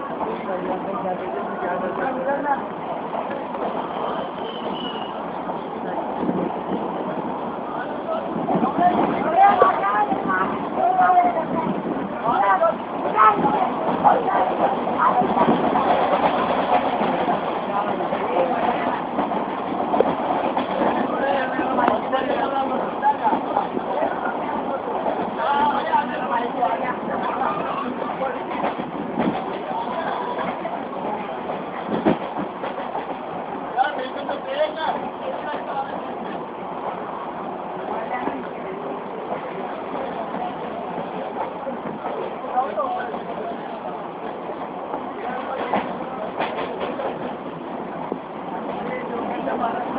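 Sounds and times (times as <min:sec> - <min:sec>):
train carriage running on track: 0:00.0 - 0:49.9.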